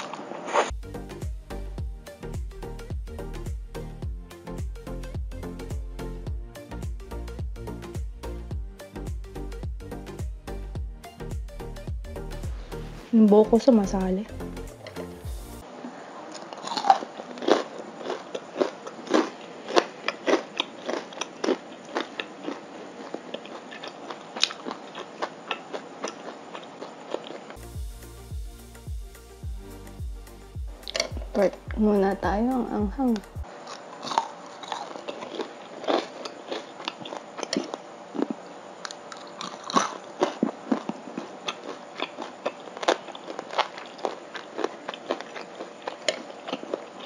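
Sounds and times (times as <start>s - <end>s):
crunchy chewing: 16.3s - 27.6s, 30.8s - 31.4s, 33.4s - 47.0s.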